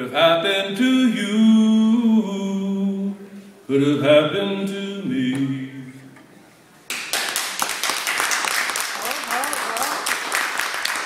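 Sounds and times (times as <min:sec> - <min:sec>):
audience applauding: 0:06.9 - 0:11.0.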